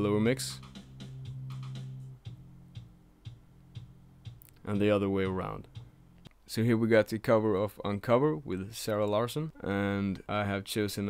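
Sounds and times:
kick drum ticks: 0:00.6 - 0:06.3.

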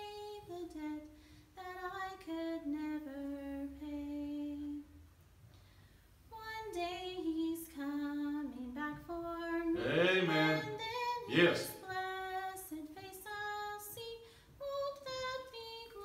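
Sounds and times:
woman singing unaccompanied: 0:00.0 - 0:04.9, 0:06.3 - 0:16.0.

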